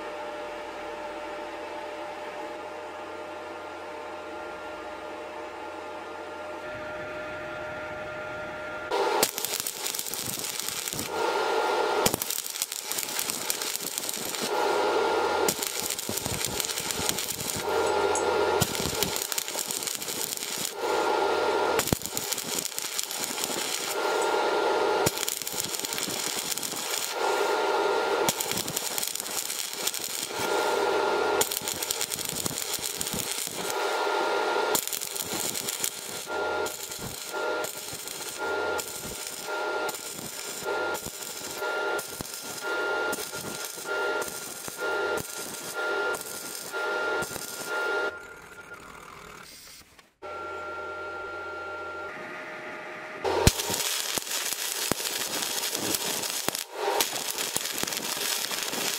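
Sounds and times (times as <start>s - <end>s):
low buzzing: 1.8s - 58.9s
welding arc crackling: 8.9s - 49.9s, 53.2s - 58.9s.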